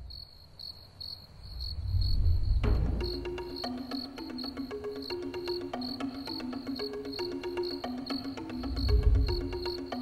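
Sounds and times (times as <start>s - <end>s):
cricket chirping: 0.0s - 10.0s
music with held notes: 2.6s - 10.0s.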